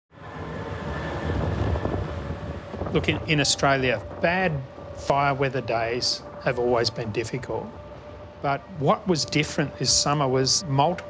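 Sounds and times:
surf on the shore: 0:00.1 - 0:11.0
wind buffeting microphone: 0:00.2 - 0:11.0.

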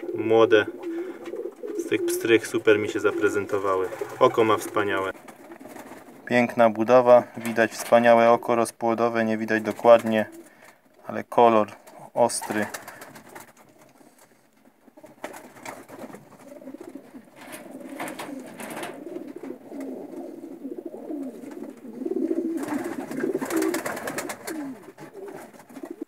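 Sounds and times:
pigeons cooing: 0:00.0 - 0:06.3, 0:09.5 - 0:10.8, 0:11.8 - 0:26.0.

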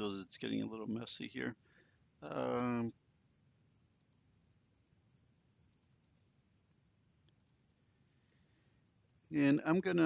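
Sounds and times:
faint computer mouse clicks: 0:04.0 - 0:04.3, 0:05.7 - 0:06.2, 0:07.2 - 0:07.8.

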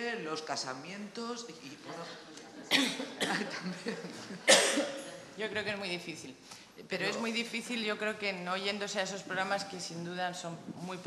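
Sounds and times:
person coughing: 0:02.7 - 0:03.7, 0:04.4 - 0:05.2.

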